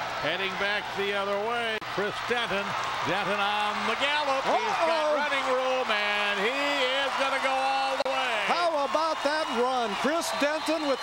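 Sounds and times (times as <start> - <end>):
man announcer shouting excitedly: 0.2 - 11.0.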